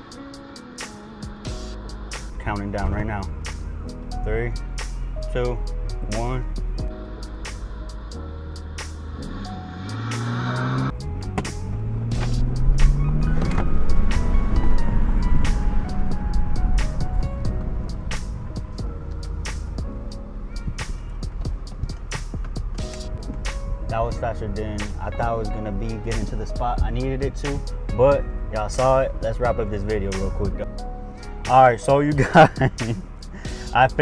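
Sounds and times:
background music with a beat: 0.0s - 34.0s
car accelerating hard: 8.6s - 23.8s.

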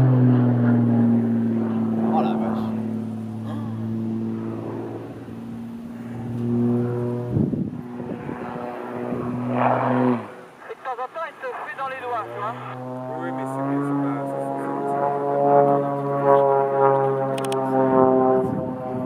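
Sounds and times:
propeller plane engine droning: 0.0s - 19.0s.

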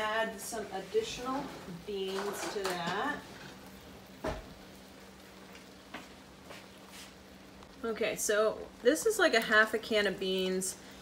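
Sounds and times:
chili sizzling in a wok: 0.0s - 11.0s.

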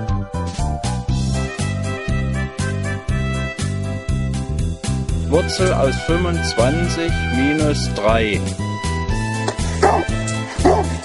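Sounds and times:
dog barking: 9.8s - 11.0s.

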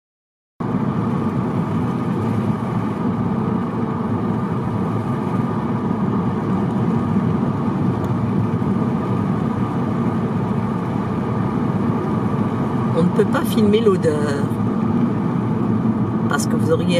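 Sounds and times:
car road noise hum: 0.6s - 16.9s.

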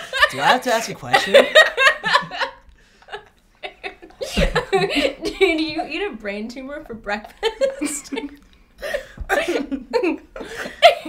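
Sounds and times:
young people laughing: 0.0s - 6.2s, 6.8s - 11.0s.

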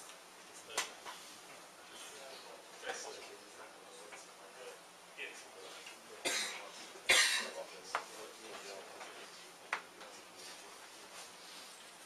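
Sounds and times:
person coughing: 6.2s - 7.6s.

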